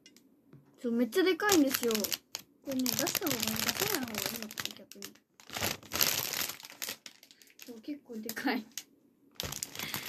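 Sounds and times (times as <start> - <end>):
plastic wrapping crinkling: 1.4 - 10.0.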